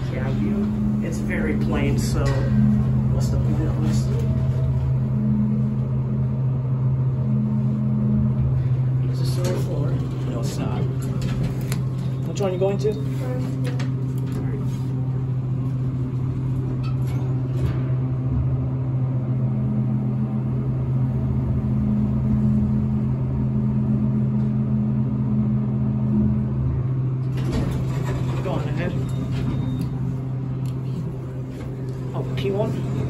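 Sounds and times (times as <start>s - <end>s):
elevator door clattering: 0.0s - 6.0s, 8.5s - 14.6s, 27.2s - 33.0s
elevator low hum: 0.0s - 33.0s.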